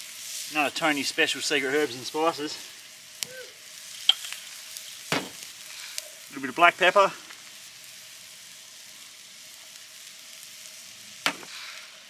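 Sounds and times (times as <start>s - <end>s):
meat sizzling in a pan: 0.0s - 12.0s.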